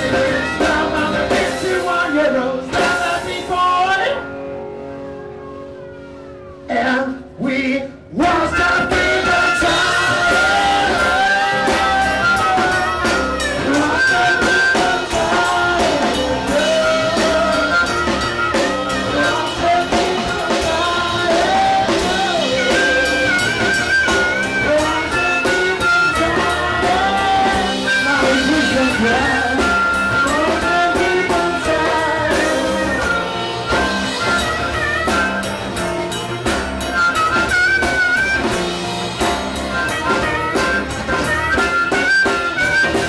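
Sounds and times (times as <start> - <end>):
harmonica wailing lead: 0.0 - 6.7, 8.2 - 43.0
blues rock band playing: 0.0 - 6.9, 8.2 - 43.0.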